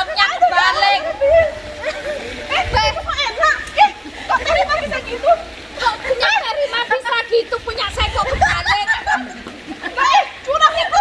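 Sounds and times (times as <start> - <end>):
water splashing in pool: 0.0 - 11.0
women talking and calling out: 0.0 - 11.0.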